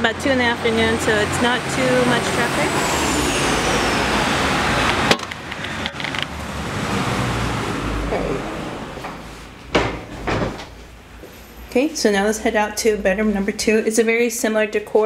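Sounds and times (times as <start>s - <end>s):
vehicle passing: 0.0s - 13.9s
street traffic noise: 0.0s - 15.0s
sharp knocks: 9.1s - 10.8s.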